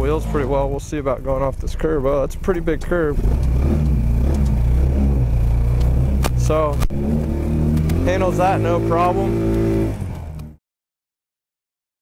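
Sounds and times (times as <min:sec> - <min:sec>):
go-kart engine droning: 0:00.0 - 0:10.6.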